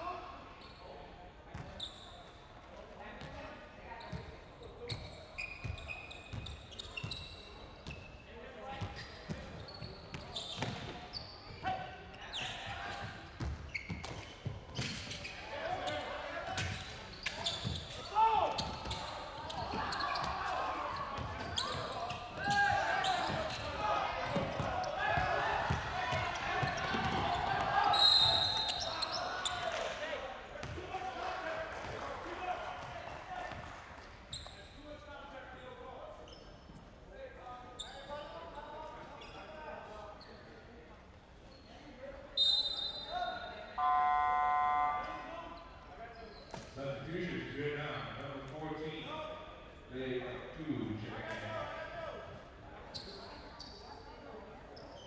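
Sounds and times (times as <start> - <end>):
players and crowd voices: 0.0 - 55.0
referee's whistle: 27.8 - 29.2, 42.4 - 45.6
horn-like buzzer: 43.8 - 45.3.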